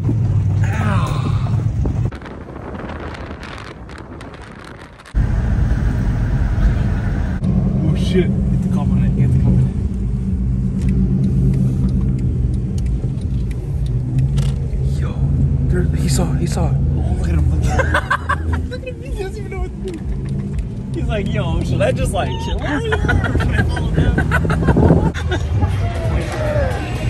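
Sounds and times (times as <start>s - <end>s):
road and engine noise: 0.0s - 27.0s
vehicle engine and tyres drone: 0.0s - 27.0s
scattered clicks: 10.7s - 14.9s, 19.5s - 21.9s.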